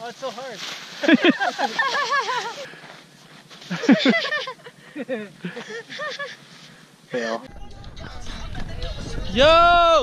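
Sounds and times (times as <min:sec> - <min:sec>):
people laughing: 0:01.0 - 0:02.8, 0:03.6 - 0:06.5.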